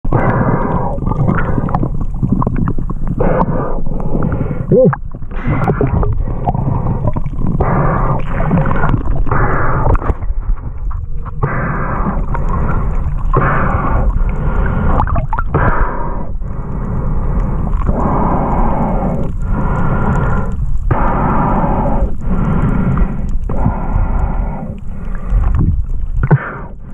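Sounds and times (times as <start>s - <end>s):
underwater water rushing: 0.0s - 26.9s
underwater hiss: 2.9s - 10.4s, 11.2s - 25.6s.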